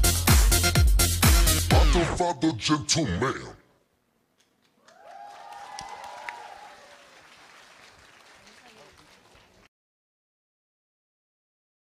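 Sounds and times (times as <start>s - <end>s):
audience applauding: 4.8s - 9.7s.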